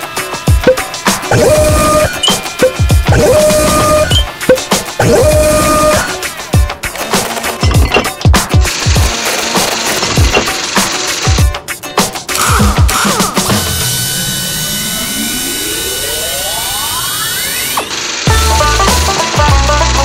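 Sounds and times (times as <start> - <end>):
bouncy music with bass line: 0.3 - 6.8, 18.3 - 20.0
rising electric buzz: 13.5 - 18.8.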